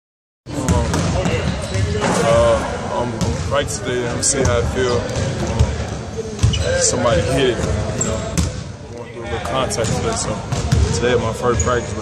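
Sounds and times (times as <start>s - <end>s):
basketballs bouncing on gym floor: 0.6s - 2.1s, 6.4s - 8.6s, 9.4s - 11.1s.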